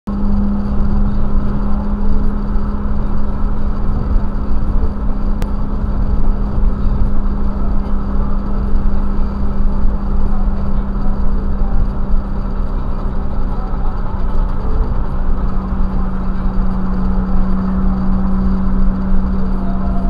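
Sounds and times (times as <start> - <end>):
car engine droning: 0.1 - 20.0
road and tyre rumble: 0.1 - 20.0.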